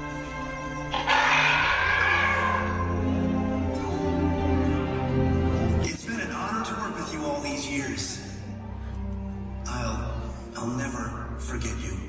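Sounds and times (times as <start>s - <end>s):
background music: 0.0s - 12.0s
dinosaur cry sound effect: 0.9s - 3.2s.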